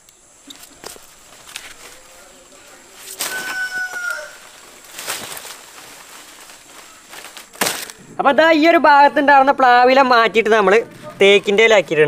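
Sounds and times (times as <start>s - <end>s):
leaves and branches rustling: 0.0s - 12.0s
bird call: 3.1s - 4.6s.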